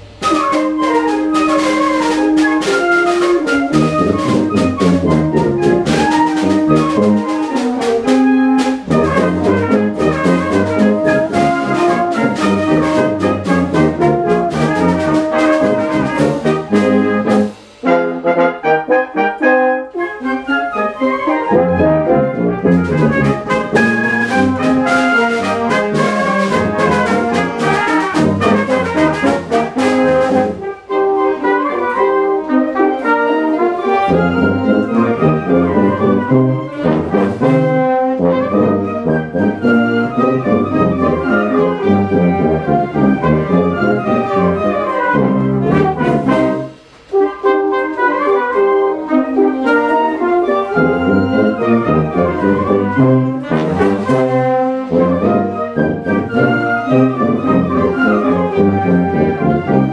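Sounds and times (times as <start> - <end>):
brass: 0.0 - 59.9
wind ensemble playing: 0.0 - 59.9.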